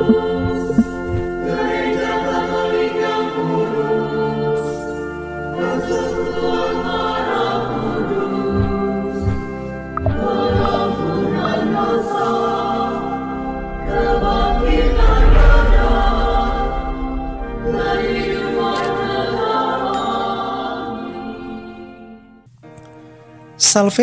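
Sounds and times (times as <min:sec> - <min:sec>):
low beats: 0:00.0 - 0:01.6, 0:08.5 - 0:11.9, 0:13.2 - 0:19.3
choir singing held chords: 0:00.0 - 0:22.5.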